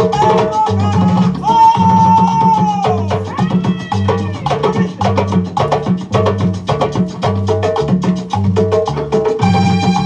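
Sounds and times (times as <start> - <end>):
fast percussion: 0.0 - 10.0
repeating bass line: 0.0 - 10.0.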